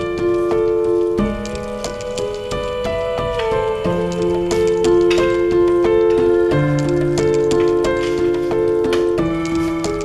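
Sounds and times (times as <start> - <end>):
held melodic notes: 0.0 - 10.0
light ticking beat: 0.0 - 10.0.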